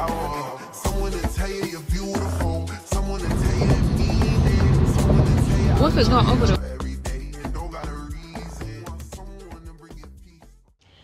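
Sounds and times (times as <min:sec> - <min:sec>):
music playing: 0:00.0 - 0:09.9
road and wind noise: 0:03.2 - 0:06.6
person speaking: 0:05.7 - 0:06.6.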